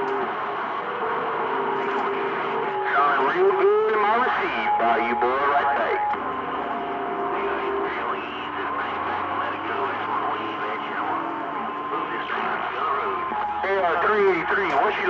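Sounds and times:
faint garbled speech: 1.8s - 6.2s, 7.2s - 15.0s
radio static: 1.8s - 6.4s, 7.0s - 15.0s.

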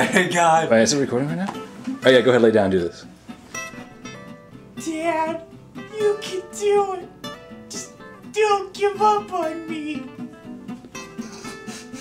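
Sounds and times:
soft acoustic guitar music: 0.0s - 12.0s
person speaking: 4.8s - 7.1s, 7.7s - 10.1s.

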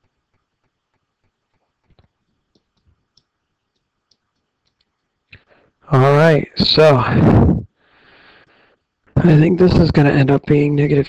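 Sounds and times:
stylus tapping on writing surface: 0.0s - 5.1s
man speaking: 5.9s - 7.2s, 9.2s - 11.0s.

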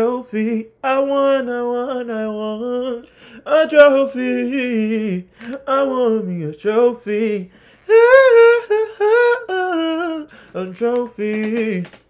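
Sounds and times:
man singing in falsetto: 7.1s - 12.0s.

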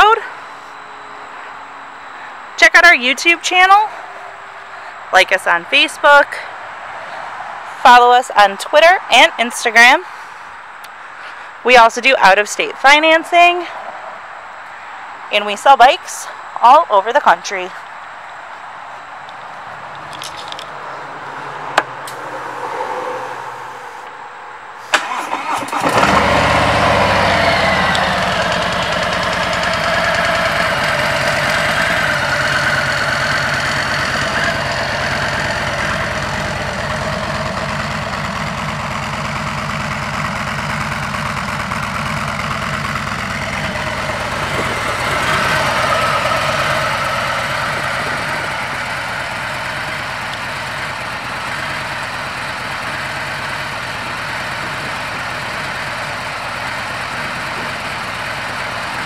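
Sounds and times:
motorcycle engine starting: 24.8s - 59.0s
motorcycle engine idling: 26.9s - 59.0s.

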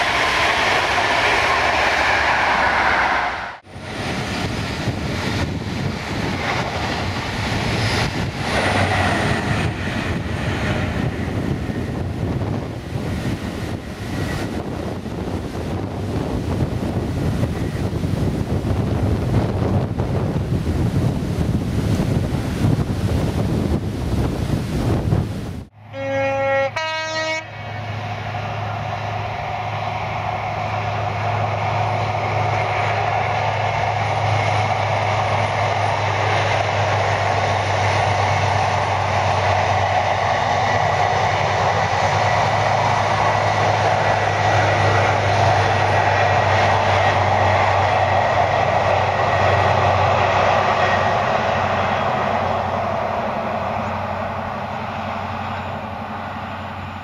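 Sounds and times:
diesel train engine running: 0.0s - 24.3s, 24.9s - 57.0s
wind buffeting microphone: 0.0s - 25.7s, 28.0s - 57.0s
train wheel and rail noise: 0.0s - 57.0s
two-tone train horn: 25.8s - 27.9s.

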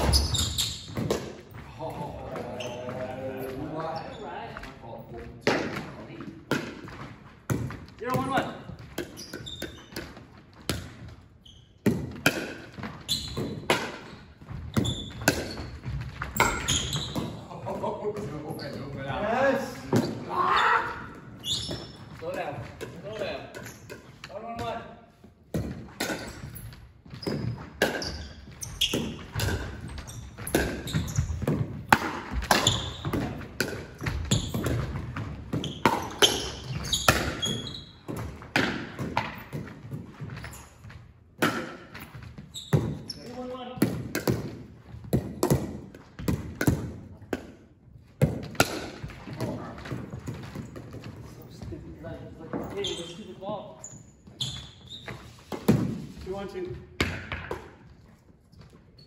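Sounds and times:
paddles hitting plastic ball: 0.0s - 3.8s, 25.5s - 51.7s, 55.1s - 56.2s
ball bouncing on hardwood floor: 0.0s - 4.0s, 5.4s - 11.2s, 11.8s - 19.2s, 25.5s - 51.8s, 57.0s - 58.0s.

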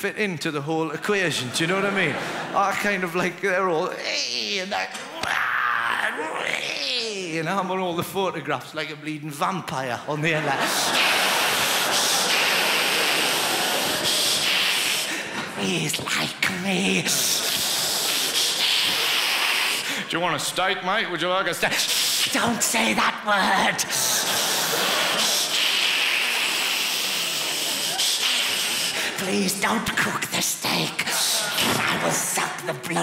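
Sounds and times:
audience laughing and applauding: 1.4s - 3.2s, 10.2s - 15.9s, 16.6s - 20.4s, 23.6s - 29.2s
man hissing through teeth: 10.9s - 15.4s, 17.0s - 20.0s, 21.8s - 22.4s, 24.0s - 29.2s.

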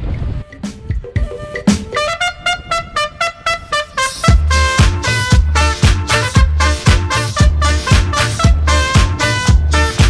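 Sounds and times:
melody of quick notes over drums: 0.0s - 2.4s, 4.2s - 10.0s
street noise: 0.0s - 10.0s
band with heavy bass beat: 4.3s - 10.0s.

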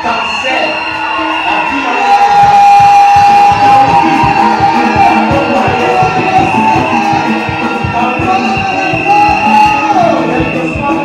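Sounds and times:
live church band music: 0.0s - 11.0s
steady drum beat: 2.0s - 11.0s.

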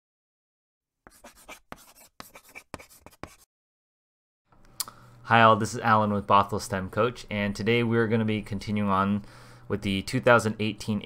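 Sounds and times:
chalk scratching on chalkboard: 1.1s - 3.5s.

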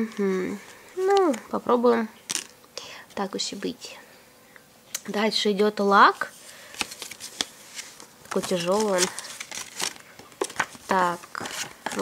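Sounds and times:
paper crinkling: 6.5s - 12.0s.

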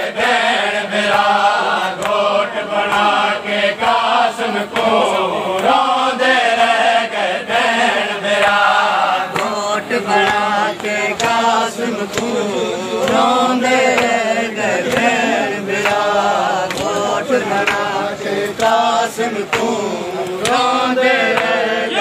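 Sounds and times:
men chanting a lament: 0.0s - 22.0s.

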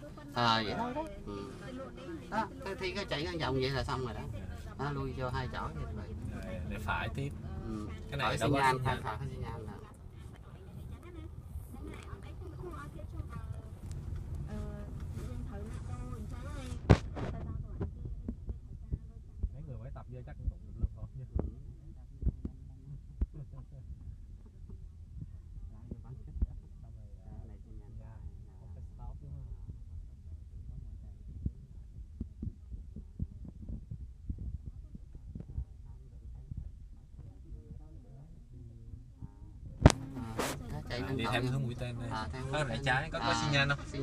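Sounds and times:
car engine and road rumble: 0.0s - 44.0s.

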